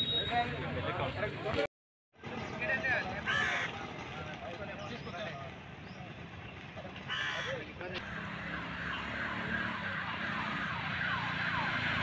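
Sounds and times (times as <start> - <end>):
traffic hum: 0.0 - 12.0.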